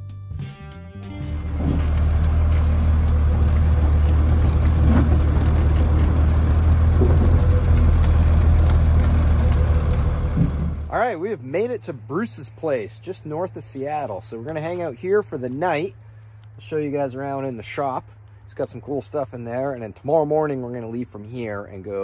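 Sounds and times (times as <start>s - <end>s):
diesel engine drone: 1.0s - 22.0s
road noise: 1.1s - 22.0s.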